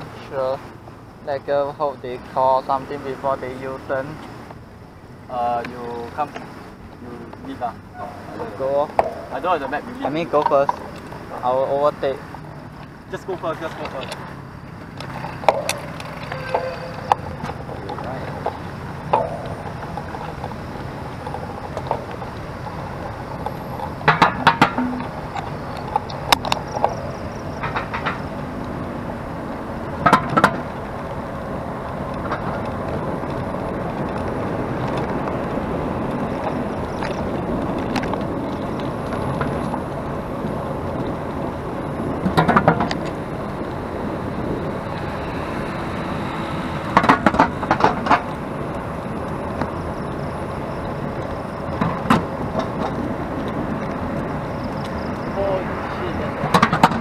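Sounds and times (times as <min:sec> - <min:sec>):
cars passing: 0:00.0 - 0:57.0
sharp clicks and knocks: 0:14.8 - 0:28.8, 0:30.0 - 0:30.8, 0:42.2 - 0:43.2, 0:46.9 - 0:49.8, 0:56.4 - 0:57.0.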